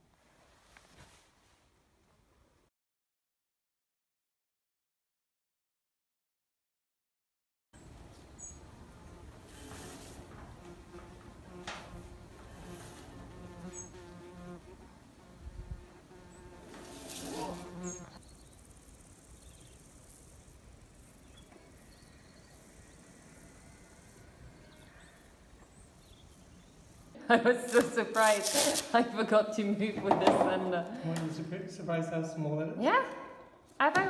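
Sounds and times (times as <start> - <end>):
flying insect buzzing: 8.4 - 29.0.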